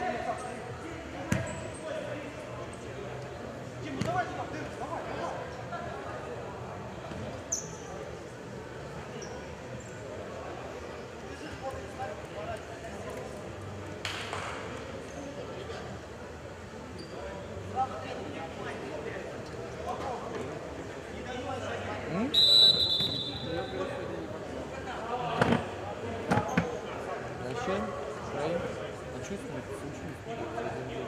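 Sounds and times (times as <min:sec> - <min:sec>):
referee's whistle: 0:22.3 - 0:23.8.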